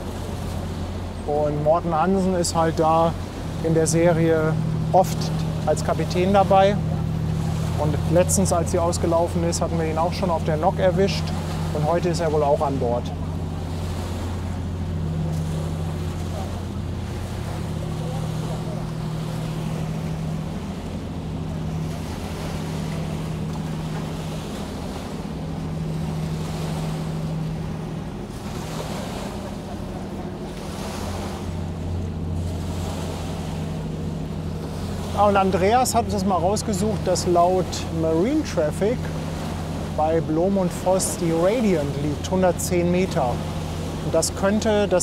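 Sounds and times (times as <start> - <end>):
ferry diesel drone: 0.0 - 45.0
waves washing on shore: 0.0 - 45.0.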